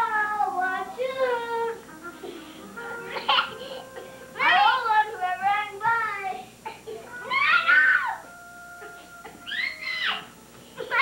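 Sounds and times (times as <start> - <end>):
young child squealing: 7.2 - 8.3, 9.4 - 10.3.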